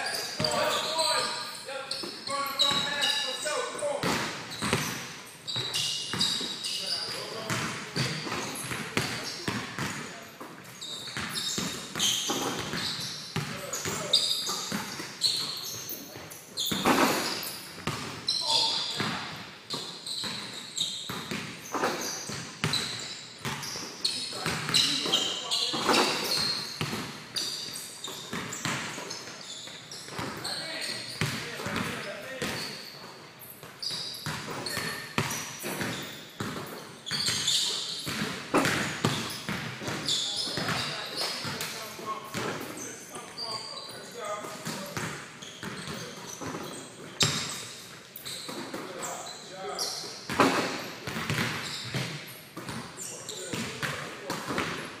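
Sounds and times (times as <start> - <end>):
basketballs bouncing on wooden floor: 0.0 - 1.1, 1.9 - 3.2, 4.0 - 43.4, 44.4 - 49.2, 50.0 - 55.0
ball hitting rim and backboard: 4.0 - 6.4, 7.1 - 10.1, 28.1 - 29.1, 34.2 - 42.7, 50.3 - 52.9, 53.5 - 54.9.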